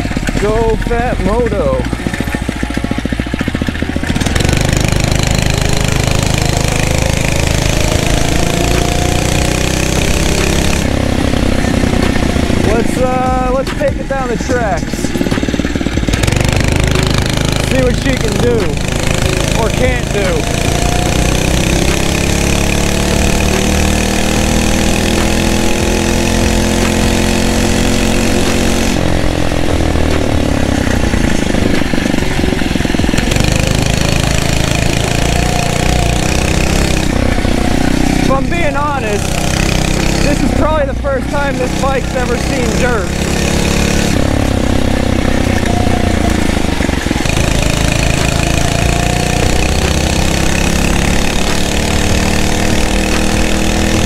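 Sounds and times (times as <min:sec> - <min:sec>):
motorized bicycle engine running: 0:00.0 - 0:54.0.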